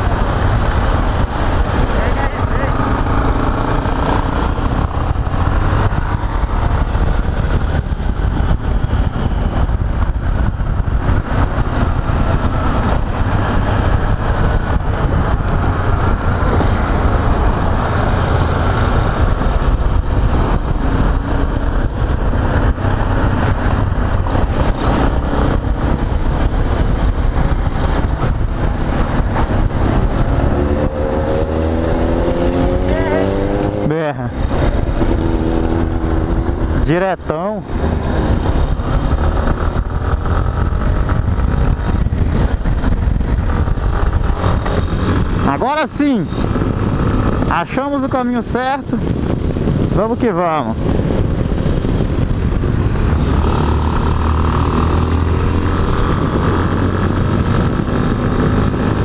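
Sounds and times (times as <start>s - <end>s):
motorcycle engine: 0.0s - 59.0s
wind rumble on microphone: 0.0s - 59.0s.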